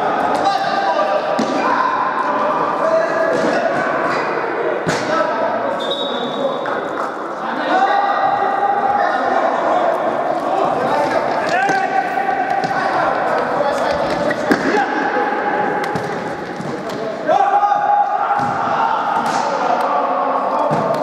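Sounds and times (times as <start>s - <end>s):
players shouting: 7.4s - 16.4s, 17.1s - 21.0s.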